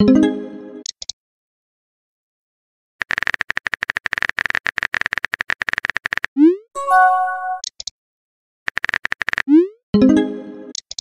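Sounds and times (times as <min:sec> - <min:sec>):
message chime: 0:06.8 - 0:07.6.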